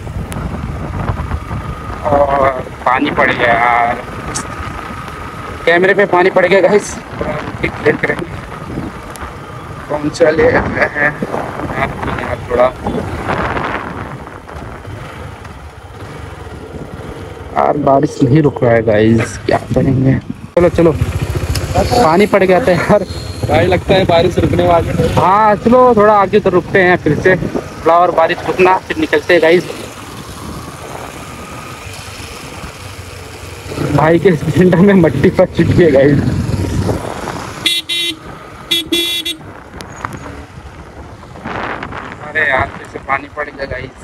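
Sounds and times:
wind rushing over microphone: 0.0s - 18.0s, 19.2s - 32.9s, 33.6s - 44.0s
motorcycle engine and road noise: 0.0s - 44.0s
man speaking: 17.6s - 30.0s, 33.7s - 36.3s.

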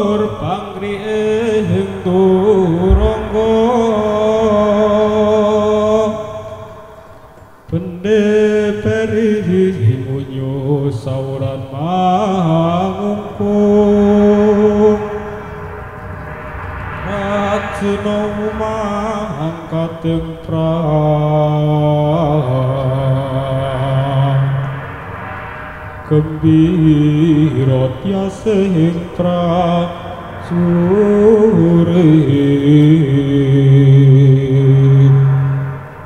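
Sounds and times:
person singing slow gliding line: 0.0s - 6.8s, 7.7s - 36.0s.

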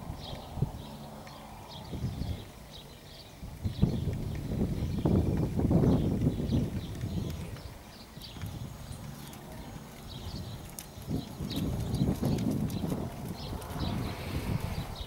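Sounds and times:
horse hooves trotting on sand: 0.0s - 15.0s.

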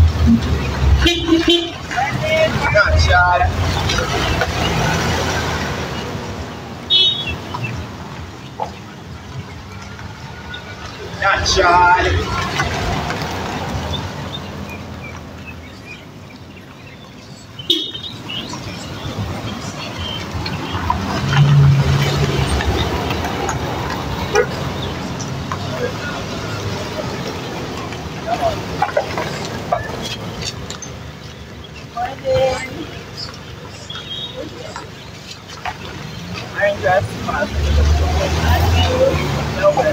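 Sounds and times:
faint voices: 0.0s - 6.8s, 7.4s - 39.9s
low traffic rumble: 0.0s - 39.9s.

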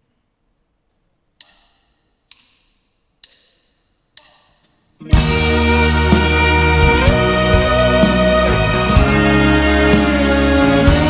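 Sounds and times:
drumsticks clicked together: 1.4s - 4.8s.

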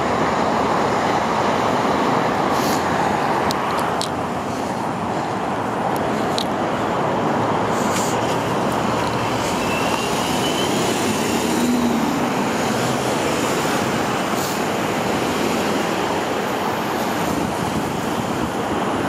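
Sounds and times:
freeway traffic roar: 0.0s - 19.0s
faint rising squeal: 9.4s - 11.9s.

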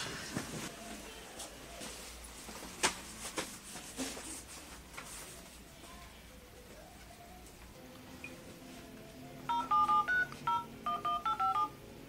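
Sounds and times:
phone keypad touch-tone beeps: 9.5s - 11.8s.

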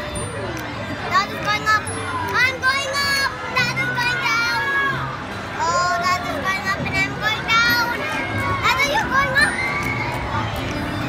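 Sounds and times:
children's voices: 0.0s - 11.0s
young boy talking: 1.0s - 5.0s, 5.6s - 9.6s.

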